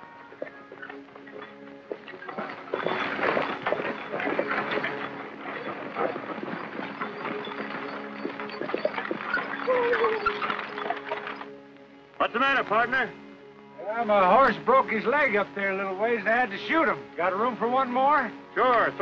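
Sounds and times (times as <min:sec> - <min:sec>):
coach clattering: 0:00.0 - 0:11.8
film music score: 0:00.0 - 0:19.0
horse hoofbeats: 0:00.0 - 0:19.0.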